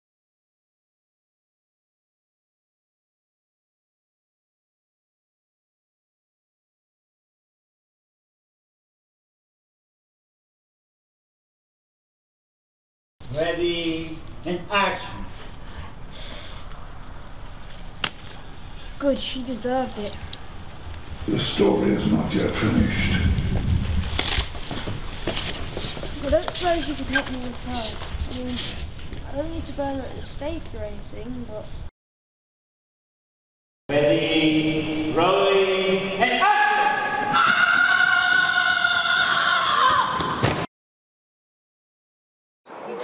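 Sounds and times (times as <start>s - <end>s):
low background rumble: 18.3s - 31.9s.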